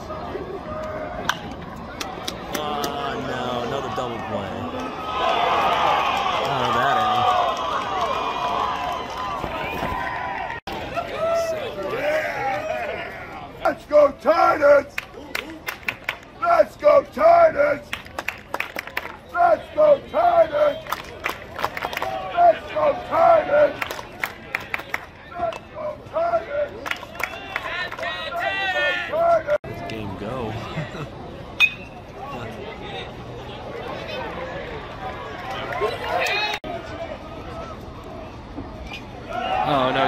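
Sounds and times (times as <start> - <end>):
crowd shouting and chanting: 0.0 - 15.6, 16.3 - 17.9, 19.2 - 21.0, 21.8 - 31.0
crowd noise: 0.0 - 40.0.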